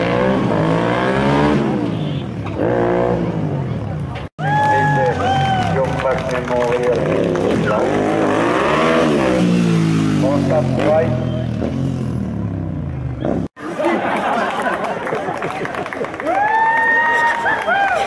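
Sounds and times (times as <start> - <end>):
motorcycle engine revving: 0.0 - 4.0, 6.9 - 13.6.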